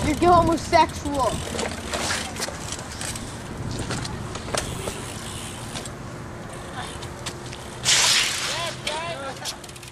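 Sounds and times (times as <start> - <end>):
bike tyres rolling on concrete: 0.0 - 9.9.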